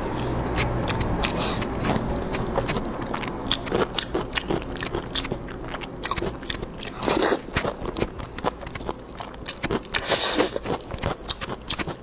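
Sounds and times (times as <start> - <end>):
close-miked chewing: 0.2 - 12.0.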